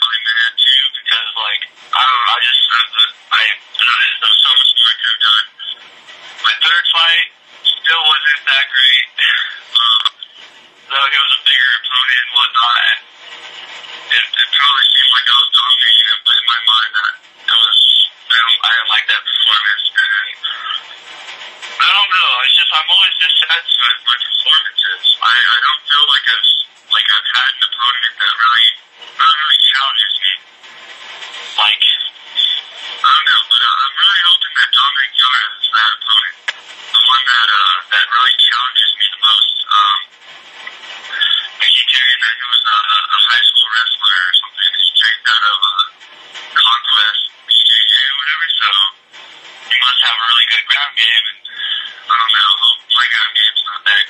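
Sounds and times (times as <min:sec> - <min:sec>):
person talking over a phone line: 0:00.0 - 0:05.8, 0:06.4 - 0:13.0, 0:14.1 - 0:21.0, 0:21.8 - 0:30.4, 0:31.5 - 0:40.1, 0:41.1 - 0:49.0, 0:49.7 - 0:54.0.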